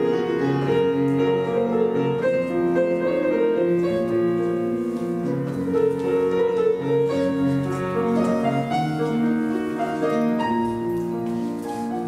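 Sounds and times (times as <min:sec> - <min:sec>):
classical piano music: 0:00.0 - 0:12.0.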